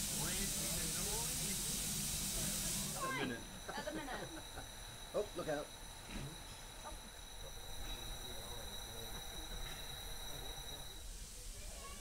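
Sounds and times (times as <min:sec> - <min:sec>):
steam locomotive hissing: 0:00.0 - 0:12.0
voices: 0:00.0 - 0:12.0.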